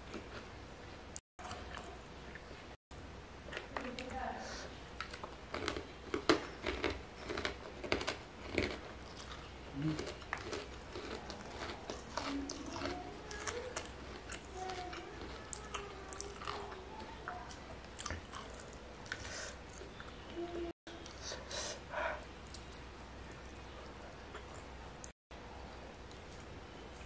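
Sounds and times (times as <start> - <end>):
close chewing with crunches: 5.0 - 20.4.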